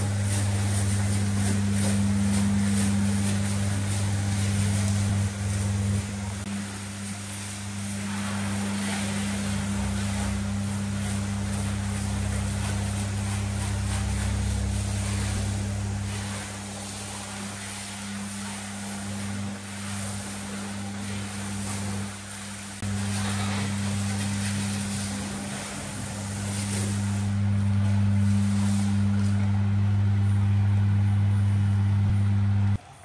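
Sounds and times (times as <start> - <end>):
water spray hissing: 0.0 - 29.4
pressure washer humming: 0.0 - 33.0.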